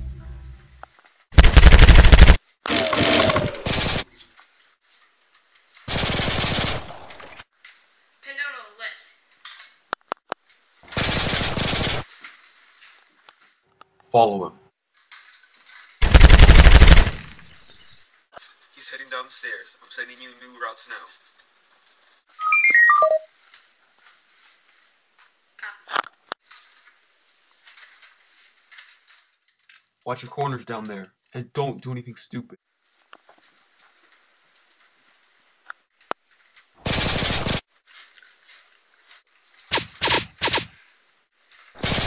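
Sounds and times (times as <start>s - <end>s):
rapid automatic gunfire: 1.4s - 4.1s, 5.9s - 7.3s, 10.9s - 12.1s, 16.0s - 17.3s, 36.8s - 37.6s, 39.7s - 40.7s, 41.8s - 42.0s
sharp click: 39.7s - 40.7s.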